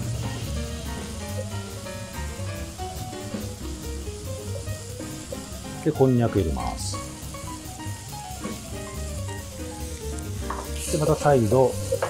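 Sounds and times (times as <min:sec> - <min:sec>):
background music with held notes: 0:00.0 - 0:12.0
vegetables sizzling in a pan: 0:00.0 - 0:12.0.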